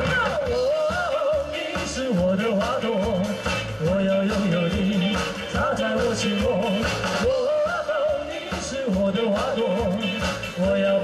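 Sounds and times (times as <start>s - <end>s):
live band with drum kit: 0.0s - 11.0s
man singing with vibrato: 0.0s - 11.0s.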